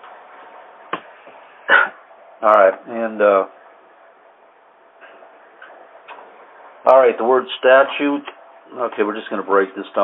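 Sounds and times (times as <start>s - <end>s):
man speaking: 2.4s - 3.5s, 6.9s - 10.0s.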